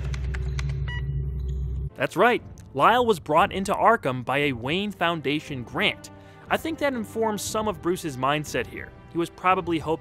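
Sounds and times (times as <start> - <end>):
low rumbling drone: 0.0 - 2.7
high electronic beep: 0.5 - 1.8.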